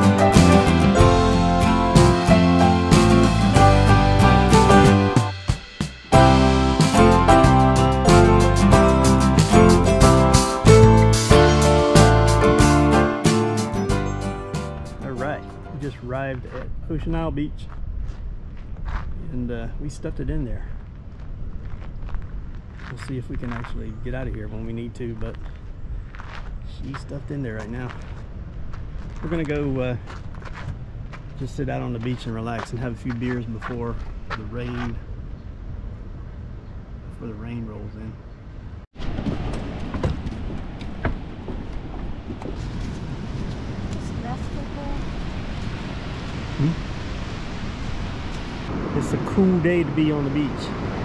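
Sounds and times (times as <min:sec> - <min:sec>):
wind rumbling on microphone: 0:16.0 - 0:37.3, 0:38.1 - 0:51.0
footsteps on sand: 0:17.6 - 0:19.2, 0:20.7 - 0:35.0, 0:39.3 - 0:43.7
wind buffeting microphone: 0:38.5 - 0:51.0.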